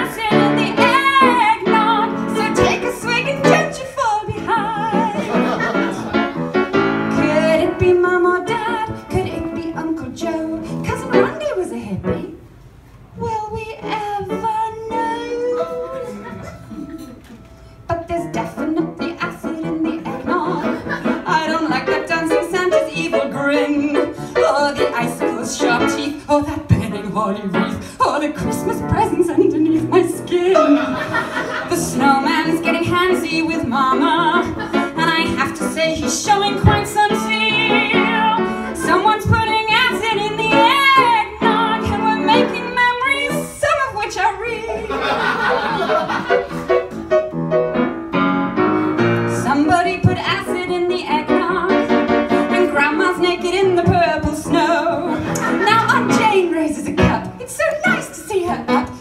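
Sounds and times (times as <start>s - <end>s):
woman singing into microphone: 0.0s - 5.4s, 7.1s - 12.3s, 17.9s - 31.0s, 31.7s - 44.9s, 49.3s - 51.8s, 52.5s - 59.0s
instrumental accompaniment: 45.0s - 59.0s.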